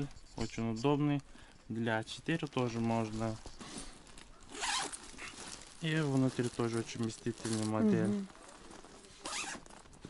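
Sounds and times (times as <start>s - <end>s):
handbag zipper opening: 4.5s - 5.4s, 9.2s - 9.6s.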